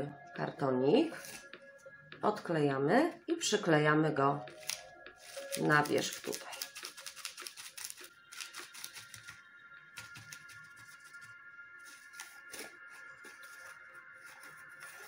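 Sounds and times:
faint background music: 0.0 - 15.0
paper rustling and crinkling: 4.6 - 9.4, 10.0 - 15.0.

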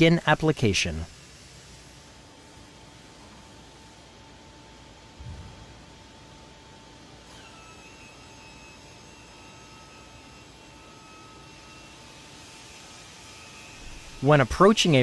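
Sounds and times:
hiss: 1.0 - 3.9
thin high whine: 7.2 - 15.0.

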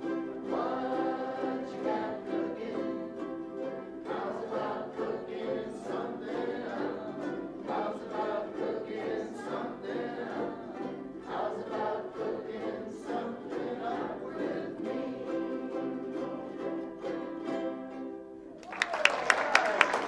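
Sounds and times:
group of voices singing: 0.0 - 17.8
ukulele ensemble strumming: 0.0 - 20.0.

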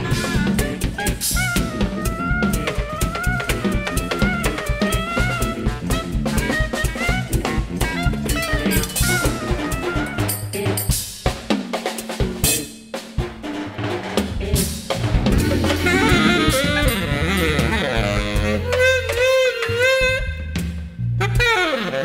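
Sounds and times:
electric guitar: 0.0 - 10.2, 14.5 - 20.6
saxophone: 0.0 - 10.6, 14.4 - 22.0
drum kit: 0.0 - 22.0.

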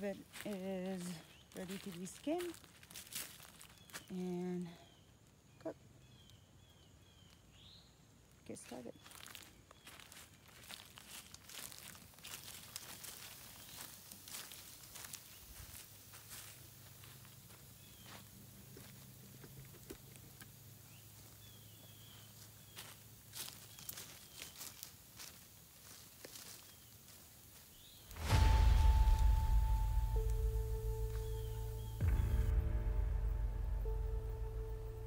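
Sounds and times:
footsteps on dry leaves: 0.0 - 4.3, 8.8 - 19.0, 21.7 - 35.0
campfire crackling: 28.1 - 35.0.

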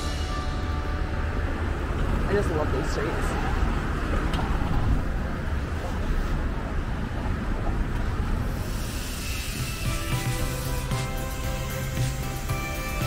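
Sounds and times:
cars driving past: 0.0 - 13.0.

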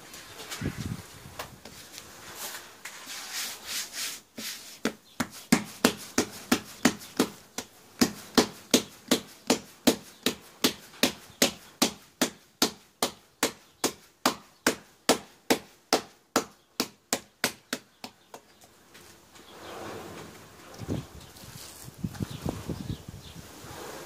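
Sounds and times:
hands slapping bread dough: 4.4 - 18.5.

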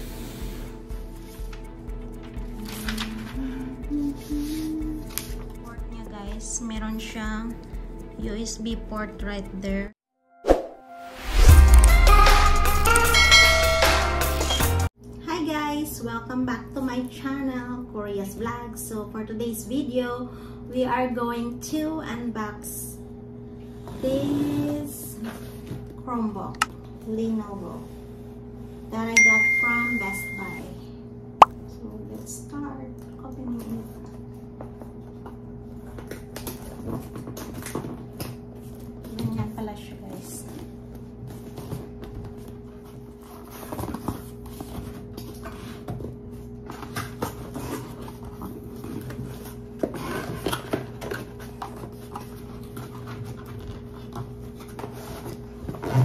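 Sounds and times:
intro music with heavy bass: 11.1 - 14.9.

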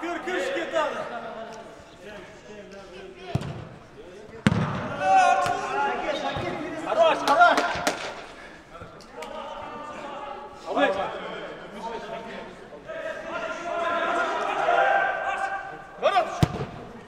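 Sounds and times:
football kicked with a thud: 4.4 - 4.8.

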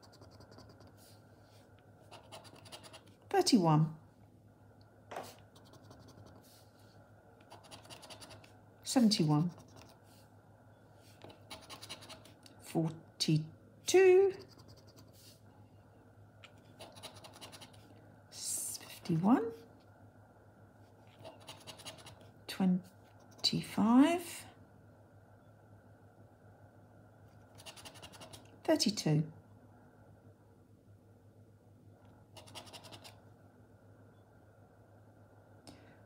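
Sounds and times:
plastic chip scraping scratchcard: 7.4 - 8.5, 11.2 - 12.5, 16.7 - 17.8, 32.4 - 33.2
plastic chip scratching card: 32.4 - 33.2.

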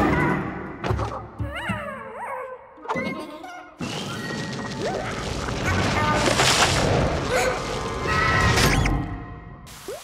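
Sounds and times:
squeaky cartoon sounds: 0.0 - 6.0.

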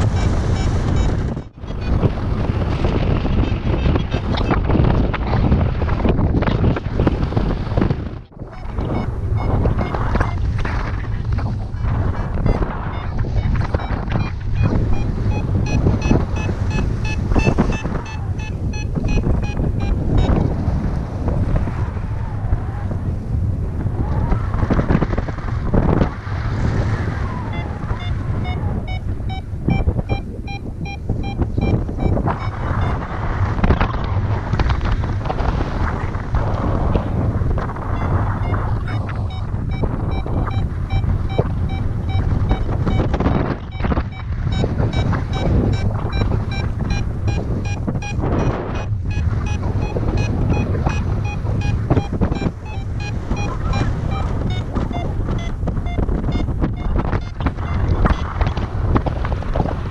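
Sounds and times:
variometer beeping rapidly: 0.0 - 2.2, 8.4 - 10.5, 11.6 - 20.6, 27.2 - 33.1, 37.8 - 58.6
wind buffeting microphone: 0.0 - 59.9.

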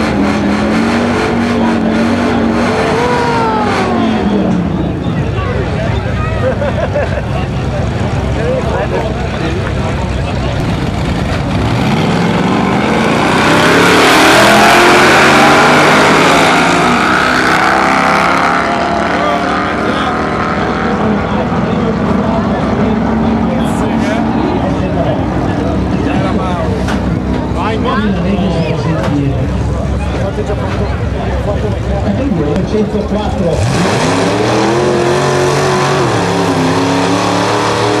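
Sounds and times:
race car engines revving: 0.0 - 38.0.

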